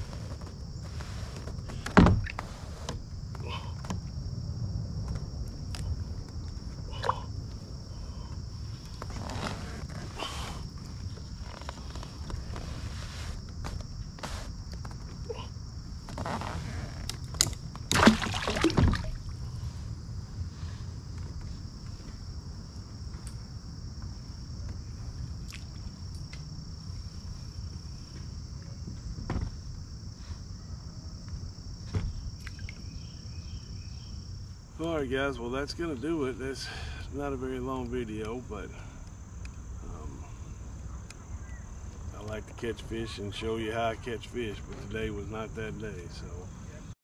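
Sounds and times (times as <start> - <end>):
insect chorus: 0.0 - 47.0
knocks and clunks in kayak: 17.4 - 19.3
water sloshing: 17.4 - 19.5.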